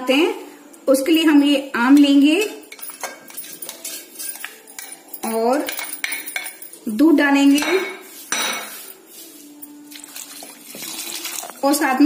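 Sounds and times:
kitchen handling noise: 0:07.5 - 0:09.1.

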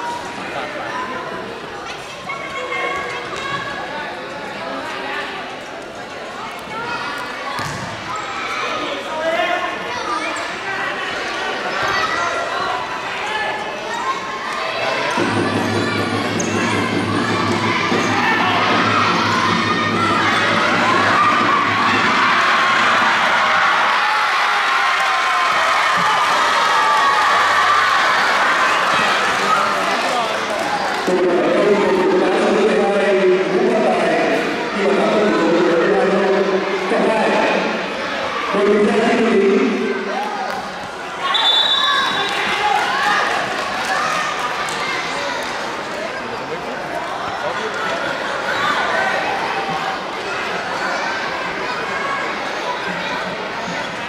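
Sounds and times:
crowd noise: 0:00.0 - 0:54.0
echoing shouts: 0:06.7 - 0:54.0
ball bouncing on wooden court: 0:07.6 - 0:08.0.

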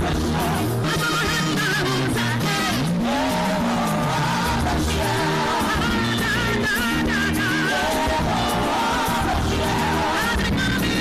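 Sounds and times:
gospel band music: 0:00.0 - 0:11.0.

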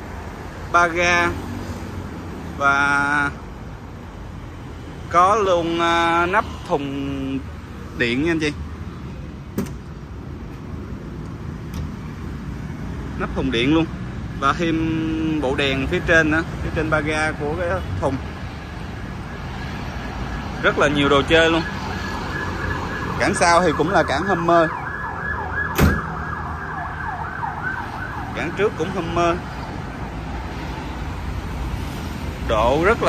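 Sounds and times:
siren sweeping up and down: 0:19.0 - 0:30.1.

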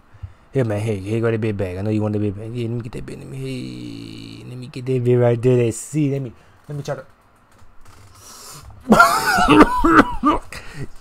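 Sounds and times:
man inhaling through lips: 0:08.0 - 0:08.8
man coughing roughly: 0:08.9 - 0:10.7.

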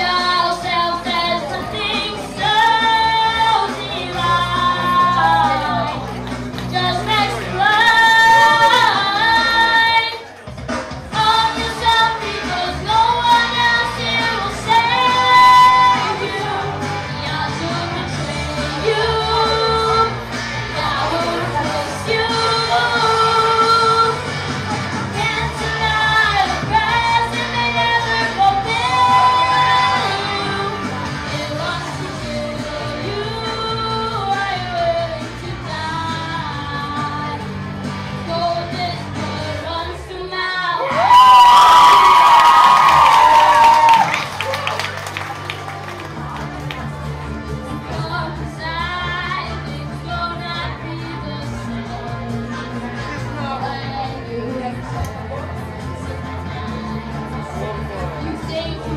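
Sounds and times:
boy singing into microphone: 0:00.0 - 0:05.8, 0:06.7 - 0:10.3, 0:11.1 - 0:20.1, 0:20.7 - 0:24.2, 0:25.1 - 0:37.5
backing music: 0:00.0 - 0:58.9.

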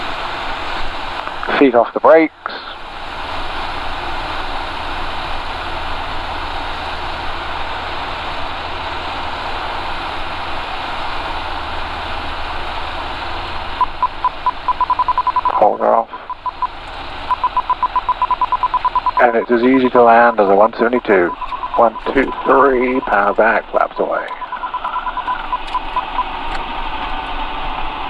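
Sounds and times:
aircraft engine and propeller noise: 0:00.0 - 0:28.0
rapid electronic warning beep: 0:13.8 - 0:26.4.

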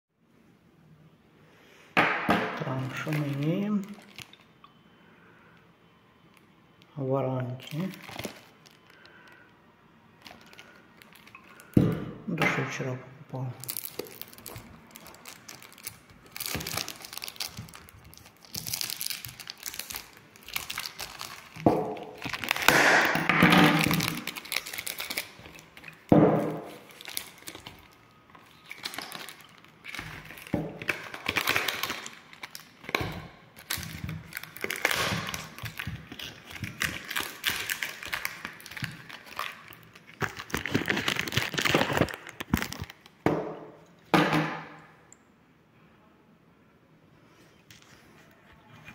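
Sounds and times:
cellophane crinkling: 0:02.6 - 0:04.8, 0:06.2 - 0:11.9, 0:12.6 - 0:43.2.

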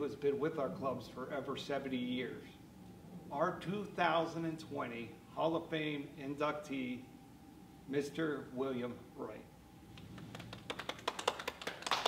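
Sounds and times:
people clapping: 0:10.0 - 0:12.0.

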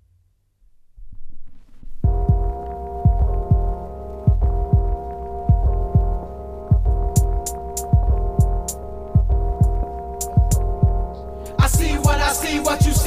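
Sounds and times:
deep booming bass drum kicks: 0:02.0 - 0:13.0
hip hop beat: 0:02.1 - 0:13.0.

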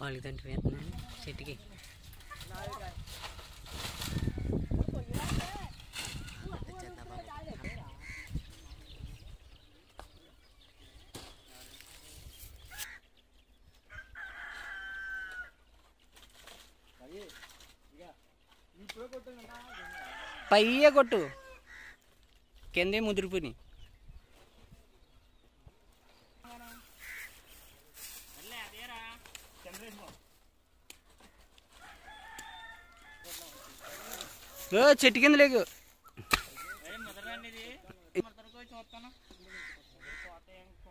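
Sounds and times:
rooster crowing: 0:13.9 - 0:15.6, 0:19.6 - 0:20.6, 0:31.8 - 0:34.7
rustling: 0:26.5 - 0:32.4.

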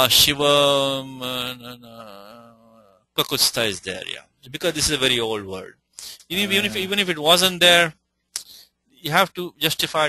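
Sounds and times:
man chanting: 0:06.3 - 0:07.1.

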